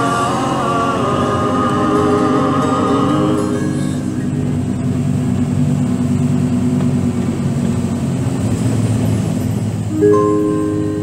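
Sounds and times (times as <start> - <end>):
heavy truck engine droning: 0.0 - 11.0.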